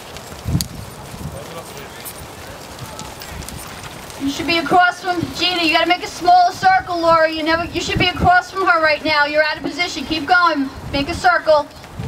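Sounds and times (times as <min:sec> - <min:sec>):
horses trotting on sand: 0:00.0 - 0:12.0.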